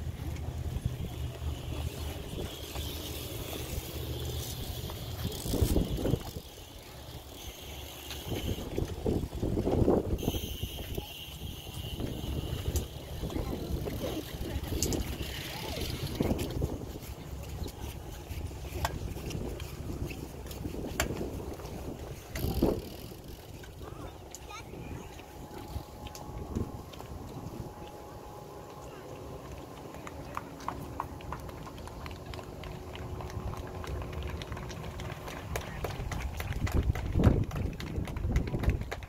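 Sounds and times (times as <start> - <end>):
wind rumbling on microphone: 0.0 - 39.0
faint distant voices: 10.2 - 19.5.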